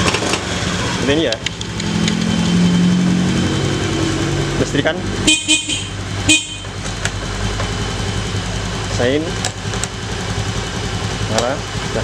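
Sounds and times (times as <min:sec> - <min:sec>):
scooter horn beep: 0:05.2 - 0:06.8.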